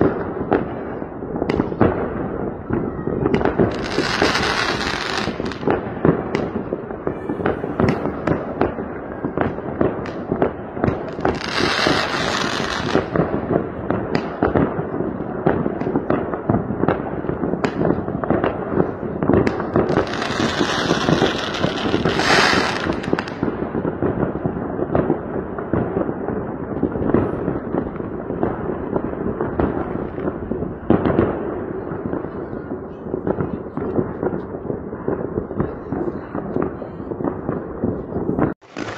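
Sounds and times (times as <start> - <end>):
firecrackers banging: 0.0 - 38.9.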